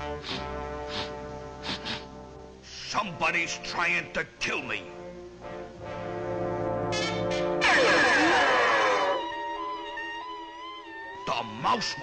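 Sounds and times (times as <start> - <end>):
brass sustained chord: 5.0 - 10.9.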